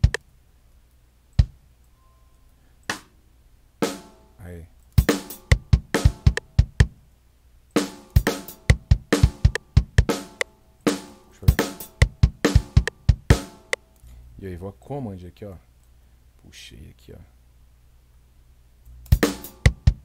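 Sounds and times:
programmed rock drum beat: 0:00.0 - 0:00.2, 0:01.4 - 0:01.6, 0:02.9 - 0:03.1, 0:03.8 - 0:04.3, 0:05.0 - 0:07.0, 0:07.8 - 0:13.8, 0:19.1 - 0:20.0.

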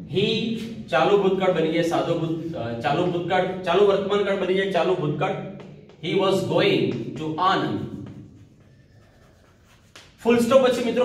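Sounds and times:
chalk scratching on blackboard: 0:07.8 - 0:11.0.

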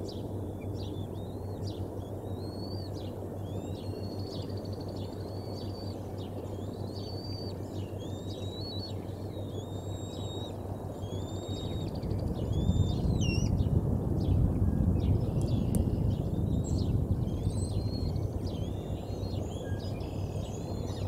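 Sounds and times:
birds singing whistled phrases: 0:00.9 - 0:13.5, 0:15.3 - 0:21.0.

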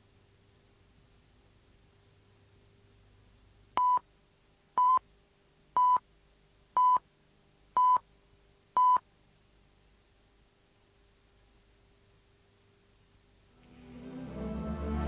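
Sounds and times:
short electronic beeps: 0:08.8 - 0:09.0.

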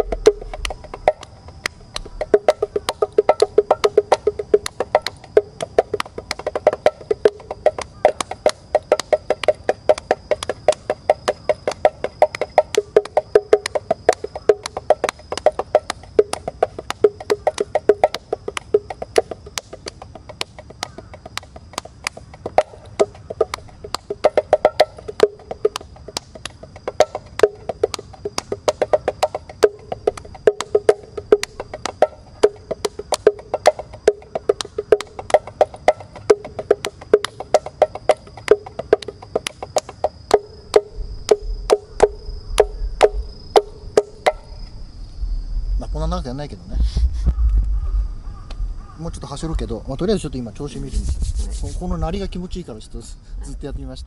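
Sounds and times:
bongos played by hand: 0:00.0 - 0:44.6.

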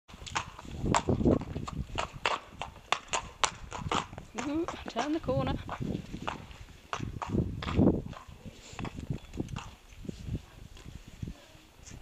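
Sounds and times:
hooves clip-clopping on paving: 0:00.1 - 0:12.0.

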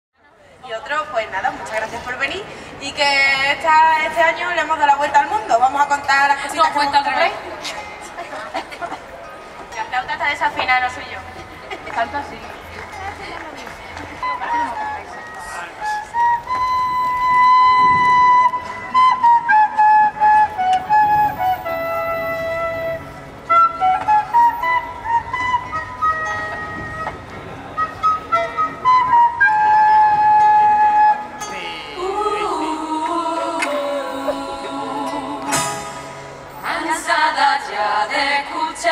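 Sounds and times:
flute melody: 0:14.1 - 0:36.8
voices singing: 0:31.4 - 0:38.9.

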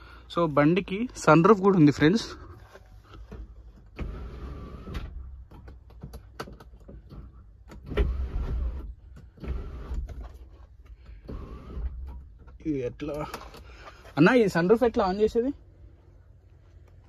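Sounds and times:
sunroof motor whirring: 0:03.2 - 0:05.7, 0:07.0 - 0:12.4.

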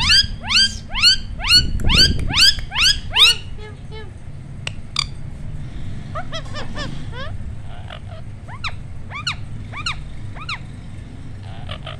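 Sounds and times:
parakeet squawking: 0:00.0 - 0:04.1, 0:06.1 - 0:10.8, 0:11.4 - 0:11.9
steady low hum: 0:00.0 - 0:11.9.

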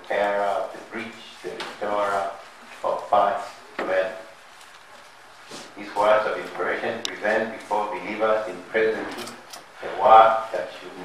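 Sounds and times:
person talking: 0:00.0 - 0:04.3, 0:05.8 - 0:11.0.

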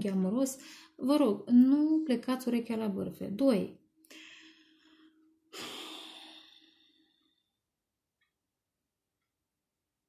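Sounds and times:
woman sighing: 0:05.5 - 0:07.2.

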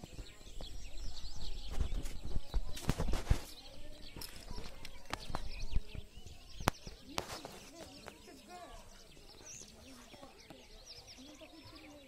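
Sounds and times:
birds chirping: 0:00.0 - 0:12.0
low wind rumble on microphone: 0:00.2 - 0:06.9.

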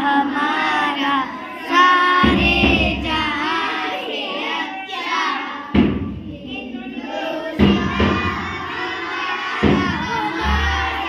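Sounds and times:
children singing: 0:00.0 - 0:11.0
deep thump: 0:05.8 - 0:06.3.

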